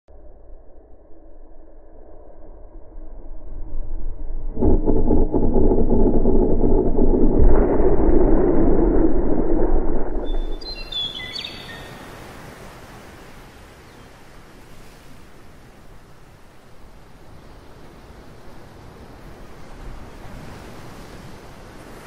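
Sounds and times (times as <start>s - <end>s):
muffled breaking wave: 3.5s - 11.4s
bird chirps: 10.2s - 12.0s.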